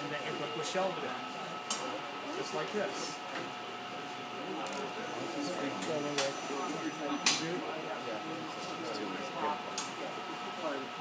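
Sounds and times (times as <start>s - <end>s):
storage crane motors whining: 0.0s - 11.0s.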